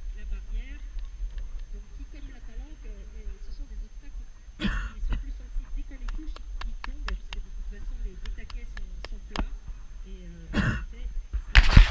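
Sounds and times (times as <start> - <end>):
wind rumble on microphone: 0.0 - 11.9.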